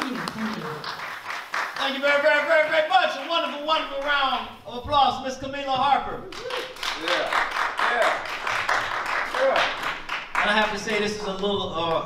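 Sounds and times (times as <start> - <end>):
audience clapping: 0.0 - 4.6, 6.1 - 12.0.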